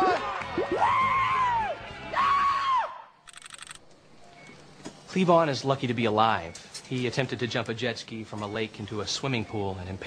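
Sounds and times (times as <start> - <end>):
man whooping and yelling: 0.0 - 3.1.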